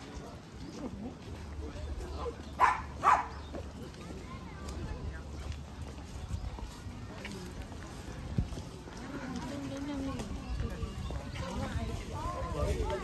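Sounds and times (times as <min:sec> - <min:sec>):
murmur of crowd voices: 0:00.0 - 0:13.0
small dog barking: 0:02.6 - 0:03.4.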